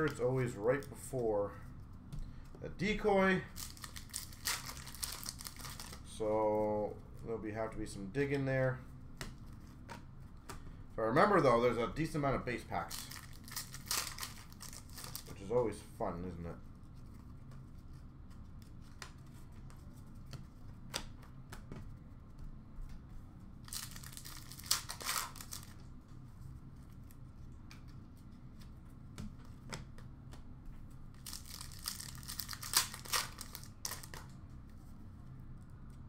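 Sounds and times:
cards clicking and flicking: 0:03.5 - 0:06.0, 0:23.7 - 0:25.8, 0:31.2 - 0:34.3
wrappers tearing and crinkling: 0:03.5 - 0:06.0, 0:12.8 - 0:15.3, 0:23.7 - 0:25.8, 0:31.2 - 0:34.3.

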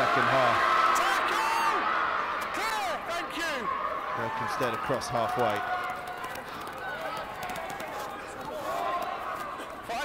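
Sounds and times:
players shouting calls: 0:00.0 - 0:10.0.

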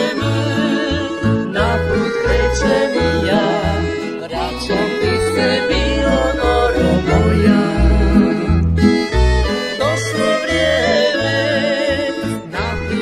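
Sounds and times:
accordion: 0:00.0 - 0:13.0
double bass plucking: 0:00.0 - 0:13.0
violin: 0:00.0 - 0:13.0.

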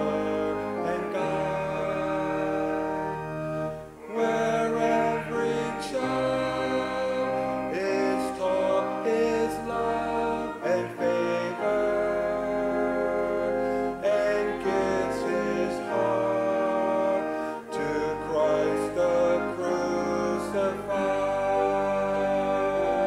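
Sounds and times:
congregation singing a hymn: 0:00.0 - 0:23.0
keyboard accompaniment: 0:00.0 - 0:23.0.

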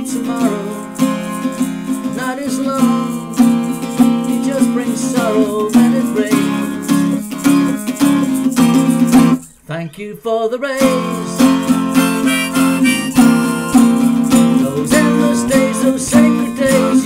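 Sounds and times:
person singing: 0:00.0 - 0:01.1, 0:04.4 - 0:06.9, 0:09.7 - 0:17.0
acoustic guitar strumming: 0:00.0 - 0:09.5, 0:10.8 - 0:17.0.

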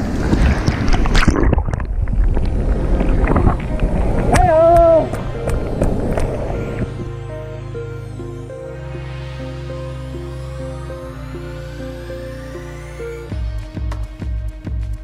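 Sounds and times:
sharp splashes and clicks: 0:00.0 - 0:07.0
soft ambient music: 0:02.5 - 0:15.0.

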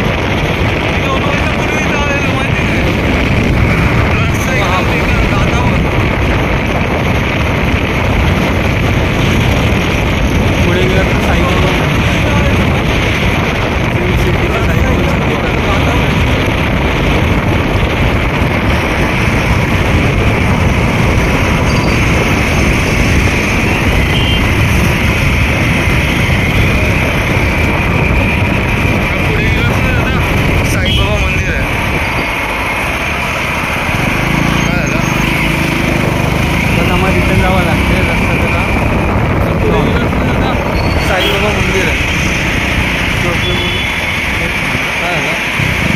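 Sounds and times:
motorcycle road noise: 0:00.0 - 0:45.9
wind rushing on microphone: 0:00.0 - 0:45.9.

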